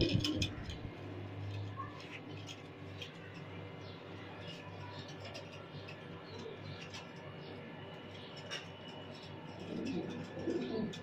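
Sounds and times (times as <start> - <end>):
pigeons cooing: 0.0 - 1.2, 5.0 - 11.0.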